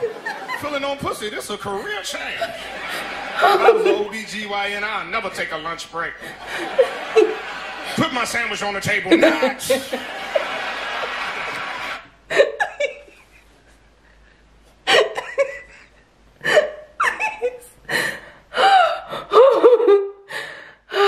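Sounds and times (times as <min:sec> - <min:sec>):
woman laughing uncontrollably: 0:02.4 - 0:04.1, 0:09.1 - 0:10.7, 0:12.3 - 0:13.3, 0:14.9 - 0:17.8.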